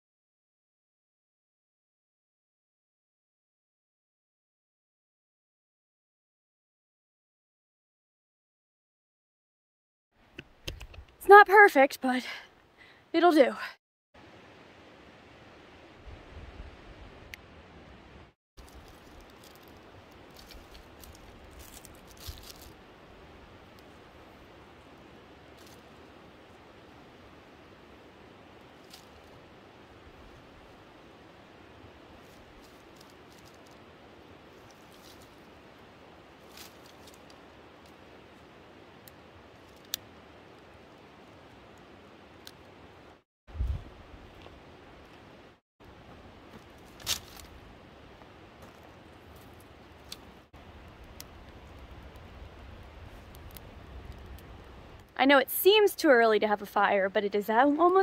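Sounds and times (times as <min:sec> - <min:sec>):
faint steady hiss: 0:14.2 - 0:58.0.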